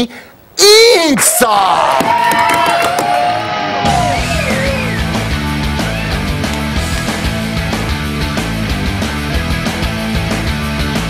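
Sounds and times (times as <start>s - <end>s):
bass and drums: 3.8s - 11.0s.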